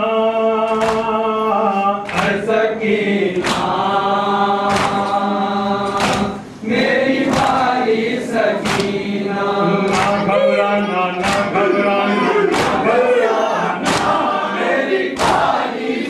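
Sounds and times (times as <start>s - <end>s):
mourners chanting in unison: 0.0s - 16.0s.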